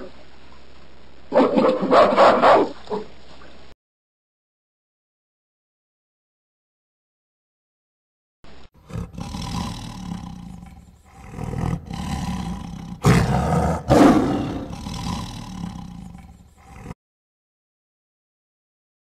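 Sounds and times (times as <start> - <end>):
tiger roaring: 8.8 - 17.0.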